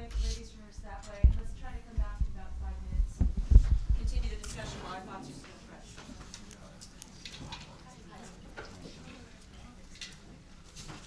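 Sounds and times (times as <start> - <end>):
people talking: 0.0 - 3.3, 4.0 - 6.8
microphone handling thumps: 0.0 - 4.4.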